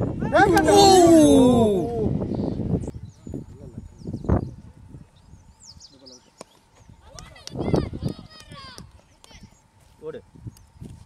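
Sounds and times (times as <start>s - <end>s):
people calling and shouting: 0.0s - 2.3s.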